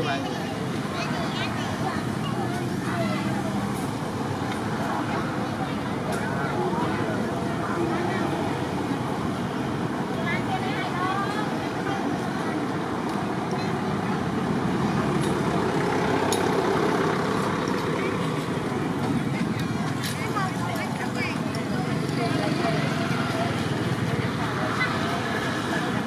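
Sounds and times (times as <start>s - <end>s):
outdoor traffic noise: 0.0s - 26.0s.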